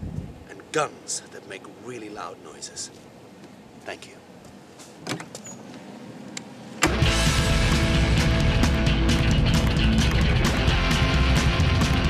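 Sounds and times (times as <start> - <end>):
loud rock music with guitar: 6.8 - 12.0.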